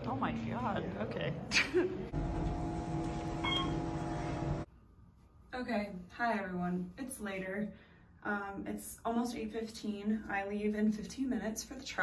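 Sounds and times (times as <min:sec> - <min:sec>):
elevator humming: 0:02.1 - 0:04.7
electronic ding: 0:03.4 - 0:03.8.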